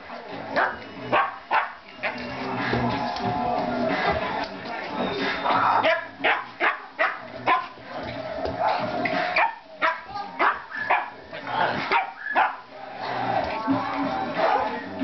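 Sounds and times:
dogs barking and yapping: 0:00.4 - 0:15.0.

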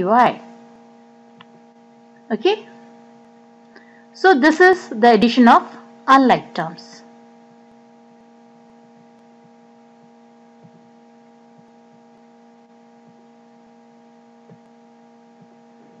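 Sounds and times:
low electrical hum: 0:00.0 - 0:16.0.

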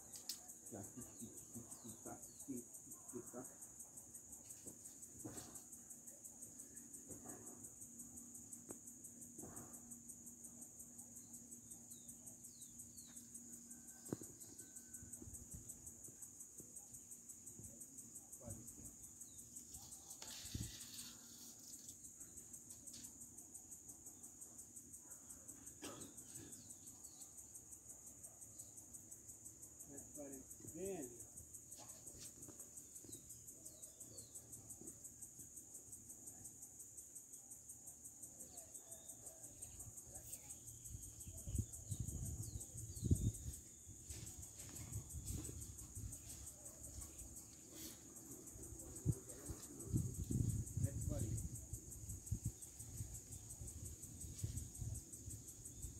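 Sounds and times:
crickets chirping: 0:00.0 - 0:55.9.

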